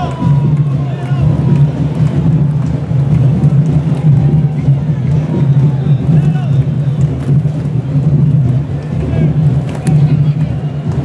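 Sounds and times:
crowd voices: 0.0s - 11.0s
drum line playing: 0.0s - 11.0s.

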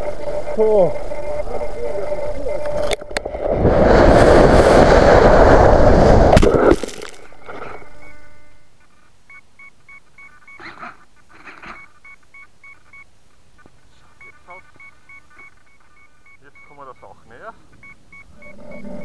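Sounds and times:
short electronic beeps: 0.0s - 3.1s, 7.7s - 8.6s, 9.3s - 19.0s.

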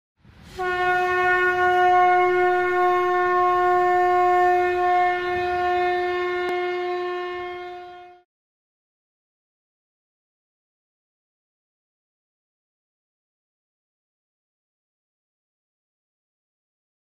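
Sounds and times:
long horn note: 0.5s - 8.3s.

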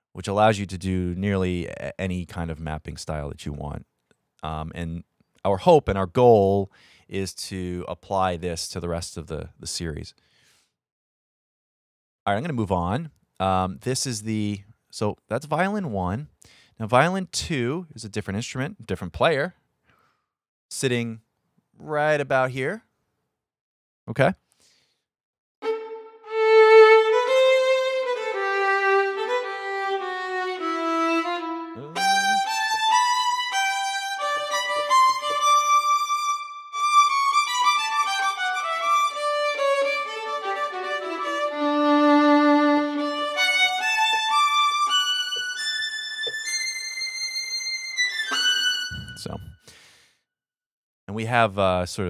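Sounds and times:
solo violin melody: 25.6s - 49.6s.

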